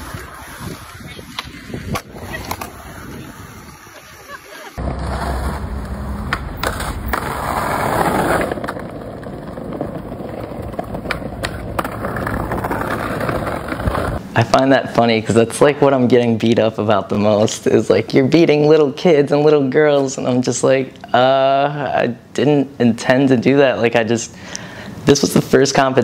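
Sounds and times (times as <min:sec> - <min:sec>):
skateboard clacks: 0:00.0 - 0:04.0, 0:04.7 - 0:14.2
skateboard wheels rolling on pavement: 0:00.0 - 0:18.7.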